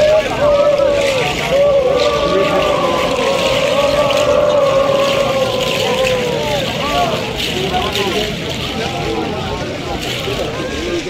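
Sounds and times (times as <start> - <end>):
voices chanting and calling: 0.0 - 11.0.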